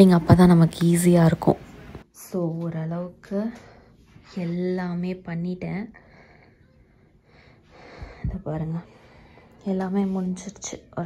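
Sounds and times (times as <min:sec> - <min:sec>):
soft breath: 0:05.9 - 0:09.7.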